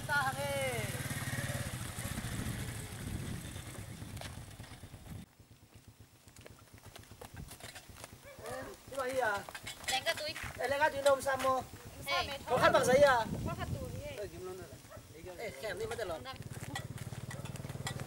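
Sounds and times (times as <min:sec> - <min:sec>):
small motorcycle engines puttering: 0:00.0 - 0:18.0.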